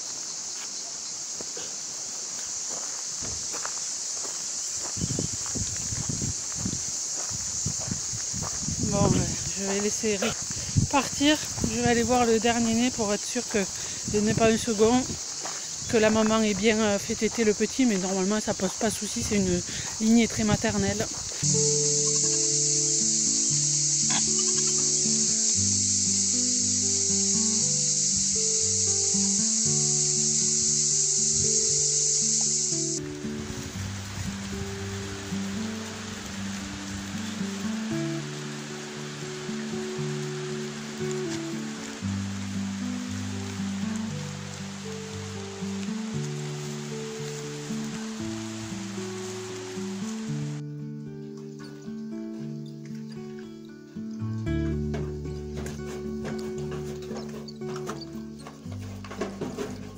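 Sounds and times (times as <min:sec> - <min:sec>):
steady high hiss: 0:00.0 - 0:59.9.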